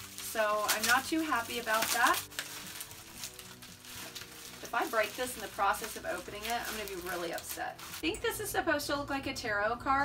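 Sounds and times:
packing material rustling: 0.0 - 8.1
faint background music: 0.0 - 10.0.

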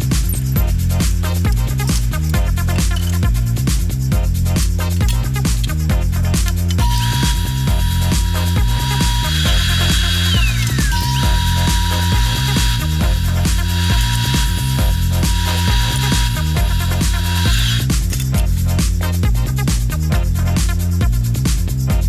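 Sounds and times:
background music with beat: 0.0 - 22.0
table saw whining: 6.7 - 17.9.

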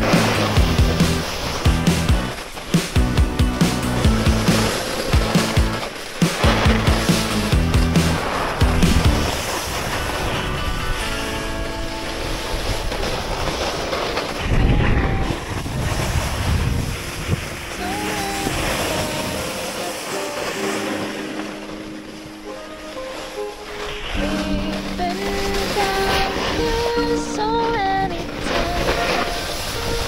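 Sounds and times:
music playing: 0.0 - 13.6, 17.8 - 30.0
snowboard scraping over snow: 0.0 - 30.0
wind on microphone: 8.8 - 20.0.

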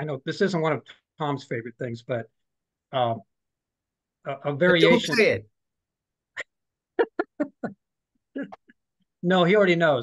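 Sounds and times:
man laughing: 7.0 - 7.8.

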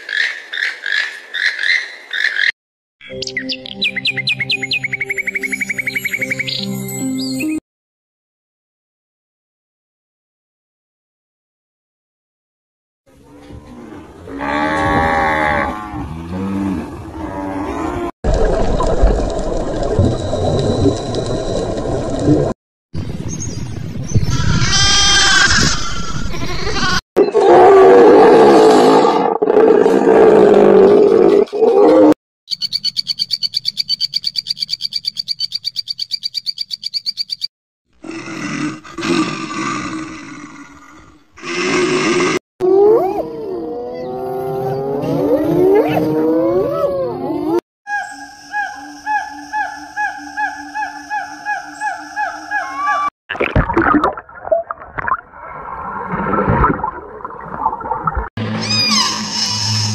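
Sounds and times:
animal calls: 43.9 - 53.1.

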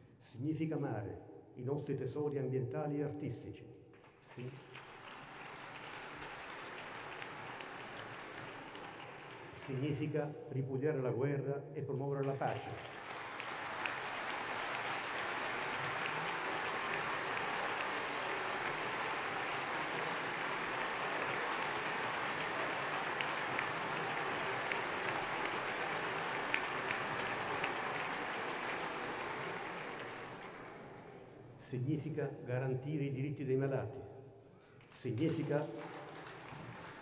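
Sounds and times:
large crowd applauding: 4.0 - 10.2, 12.2 - 31.4, 34.8 - 37.0.

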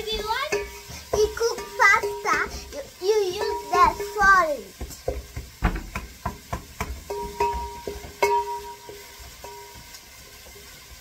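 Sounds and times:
spoon knocking on cooking pot: 0.0 - 2.6, 3.2 - 9.0.

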